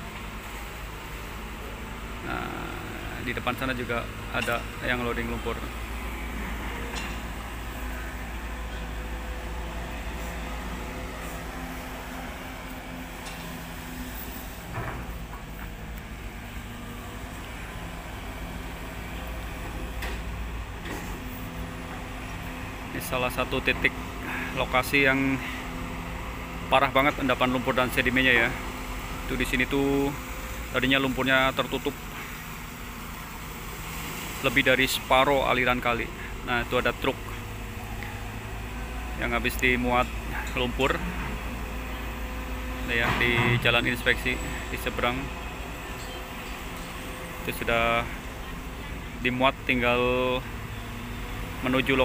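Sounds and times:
diesel excavator engine running: 0.0 - 52.0.

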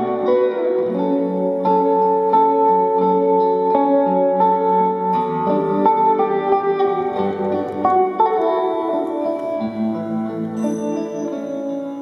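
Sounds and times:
electric guitar melody over chords: 0.0 - 12.0.

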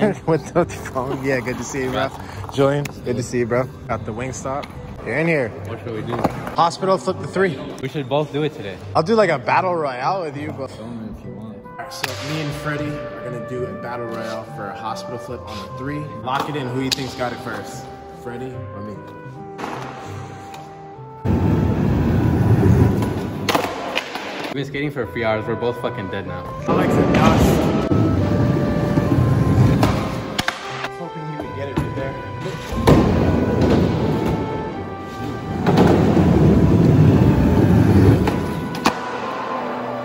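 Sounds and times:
background music: 0.0 - 40.0
skateboard wheels rolling on concrete: 33.9 - 39.0.

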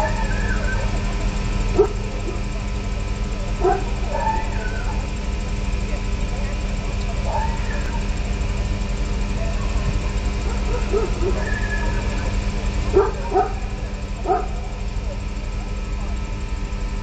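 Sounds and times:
faint hum: 0.0 - 17.0
steady low rumble: 0.0 - 17.0
dog barking: 1.7 - 2.5, 3.6 - 5.0, 7.2 - 8.1, 10.4 - 12.3, 12.9 - 15.2.

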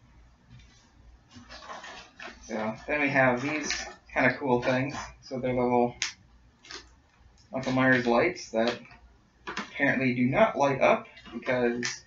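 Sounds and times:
plastic packaging rustling: 0.7 - 6.0, 6.6 - 10.0.

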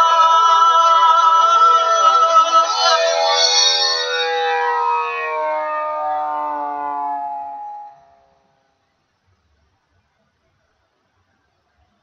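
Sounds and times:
faint low rumble and hiss: 7.9 - 12.0.

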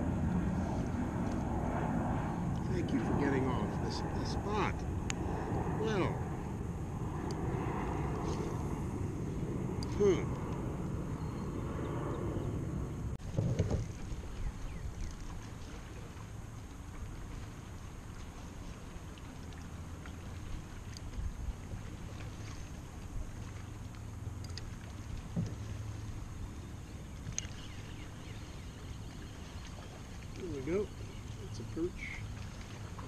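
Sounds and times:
wind on microphone: 0.0 - 16.0
water around kayak hull: 0.0 - 33.0.

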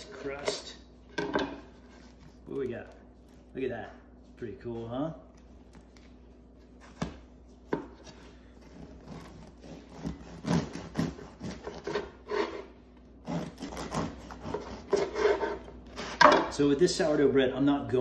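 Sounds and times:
bread knife sawing through crust: 8.6 - 16.2.

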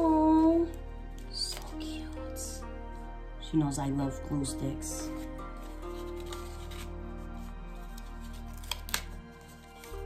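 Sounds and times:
soft background music: 0.0 - 10.0
paper crinkling: 5.0 - 10.0.

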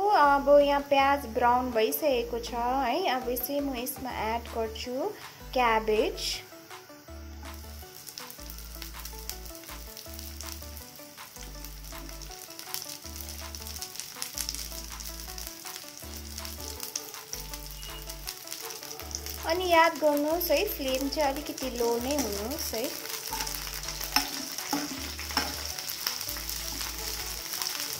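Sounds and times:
cabbage sizzling: 0.0 - 27.9
onions frying with crackles: 0.0 - 27.9.

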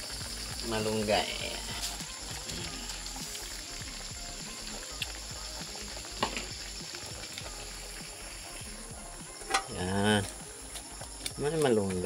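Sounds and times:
soup bubbling in a pan: 0.0 - 12.0.

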